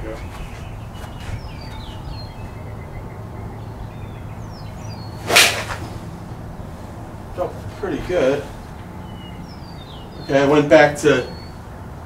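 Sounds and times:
golf club striking ball: 0:05.2 - 0:06.4.

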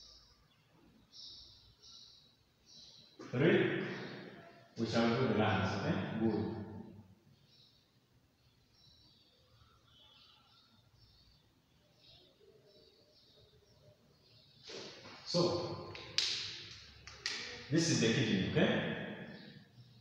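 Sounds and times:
voices: 0:03.2 - 0:06.6.

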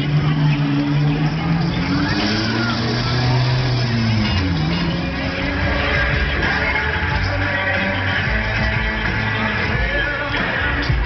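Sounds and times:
amplified music with bass: 0:00.0 - 0:11.0
ride machinery noise: 0:00.0 - 0:11.0
voices: 0:00.0 - 0:11.0.

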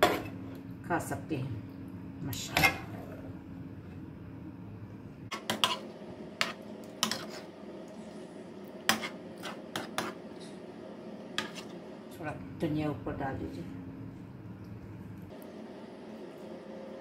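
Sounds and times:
spoon scraping a steel pan: 0:00.0 - 0:00.3, 0:05.3 - 0:07.5, 0:08.9 - 0:10.2, 0:11.4 - 0:11.8
faint steady hum: 0:00.0 - 0:17.0.

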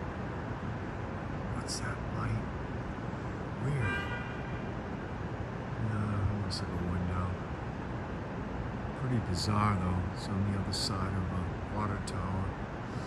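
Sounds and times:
city traffic: 0:00.0 - 0:13.0
low steady hum: 0:00.0 - 0:13.0.

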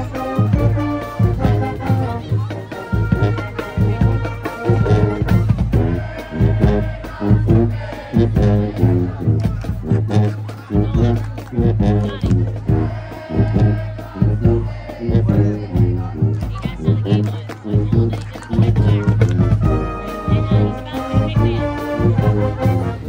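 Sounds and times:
marching band playing: 0:00.0 - 0:23.0
regular drum beat: 0:00.0 - 0:23.0
sousaphones playing bass line: 0:00.0 - 0:23.0.

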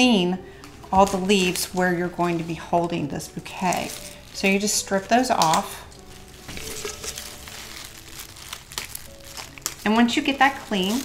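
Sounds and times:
faint background music: 0:00.0 - 0:11.0
leaves rustling and crinkling: 0:00.7 - 0:11.0.

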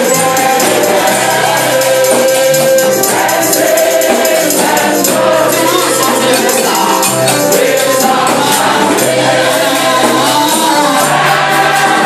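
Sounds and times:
choir singing: 0:00.0 - 0:12.0
shaken percussion: 0:00.0 - 0:12.0.

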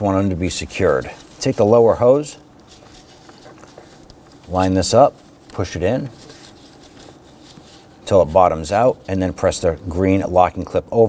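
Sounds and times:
faint rubbing and handling noise: 0:00.0 - 0:11.0.

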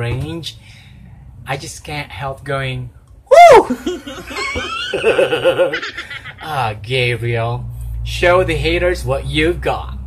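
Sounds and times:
man laughing: 0:03.4 - 0:06.6.

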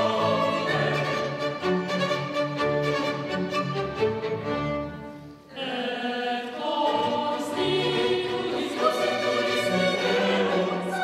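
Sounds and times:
choir singing: 0:00.0 - 0:02.3, 0:05.5 - 0:11.0
string ensemble playing: 0:00.0 - 0:11.0.

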